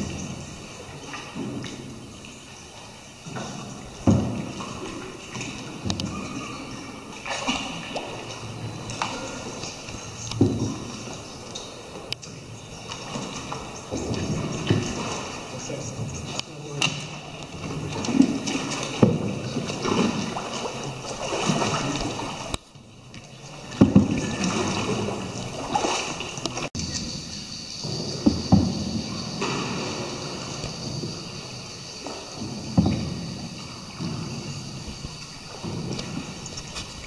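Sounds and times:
paddle strokes: 0:00.0 - 0:37.0
water sloshing around boat: 0:00.0 - 0:37.0.

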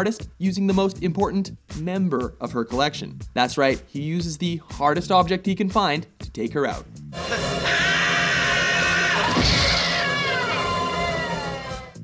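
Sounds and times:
music: 0:00.0 - 0:12.0
woman screaming: 0:07.2 - 0:12.0.

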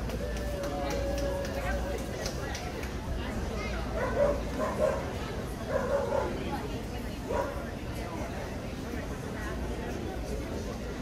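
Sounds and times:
crowd chatter in a hall: 0:00.0 - 0:11.0
dog barking: 0:04.0 - 0:05.1, 0:05.7 - 0:06.4.

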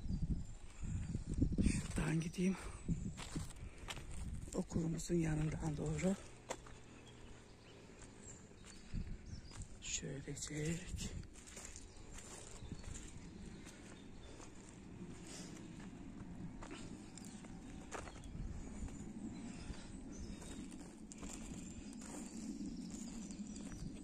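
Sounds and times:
steady low rumble: 0:00.0 - 0:24.0
footsteps on muddy dirt: 0:01.8 - 0:24.0.

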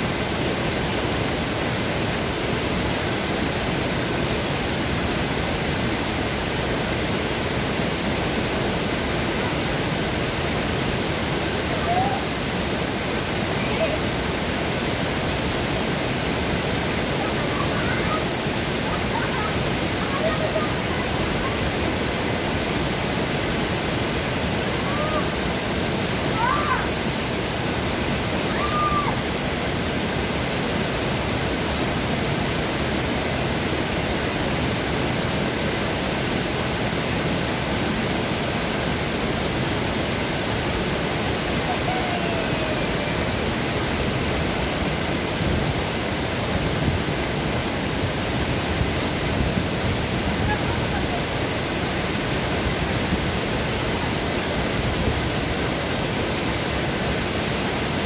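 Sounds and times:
small waterfall rushing: 0:00.0 - 0:58.0.

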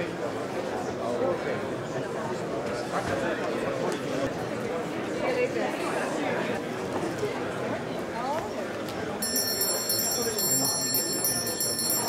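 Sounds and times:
murmur of voices: 0:00.0 - 0:12.0
small hand bell ringing: 0:09.2 - 0:12.0.

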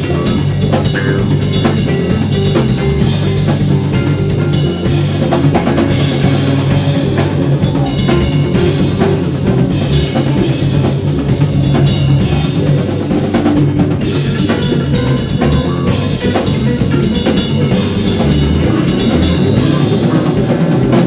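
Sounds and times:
bass drum and snare beat: 0:00.0 - 0:21.0
bass guitar: 0:00.0 - 0:21.0
electric guitar: 0:00.0 - 0:21.0.

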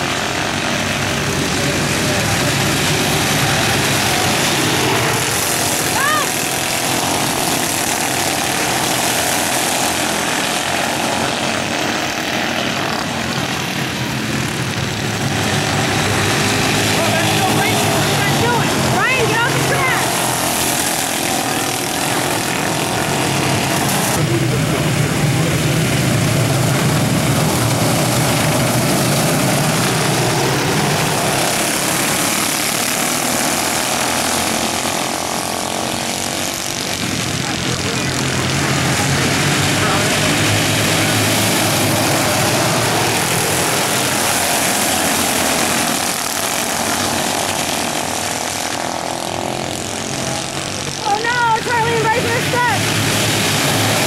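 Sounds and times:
race car engines passing: 0:00.0 - 0:54.0.

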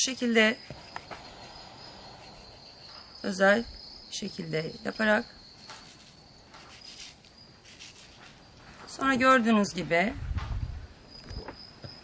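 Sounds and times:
high-pitched insect tone: 0:00.0 - 0:09.8, 0:11.0 - 0:12.0.

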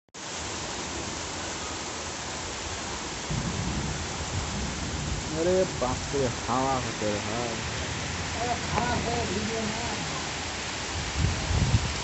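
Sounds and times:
heavy rain pouring: 0:00.2 - 0:12.0.

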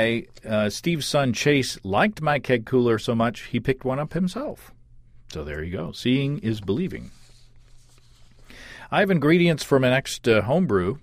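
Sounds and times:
low steady hum: 0:00.0 - 0:11.0
man breathing in: 0:08.4 - 0:08.9.

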